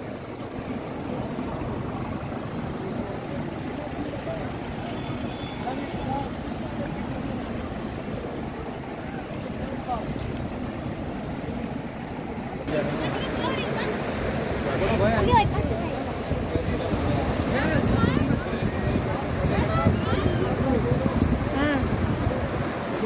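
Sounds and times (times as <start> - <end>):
faint voices talking: 0.0 - 23.0
stream rushing: 0.0 - 23.0
wind noise on microphone: 15.0 - 23.0.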